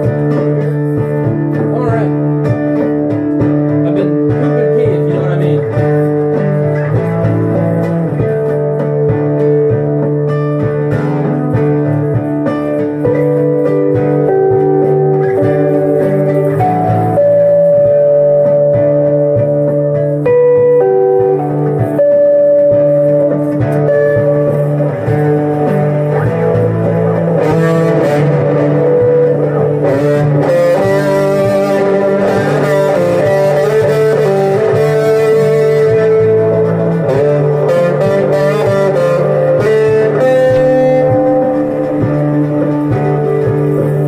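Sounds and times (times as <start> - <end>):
guitars playing: 0.0 - 44.0.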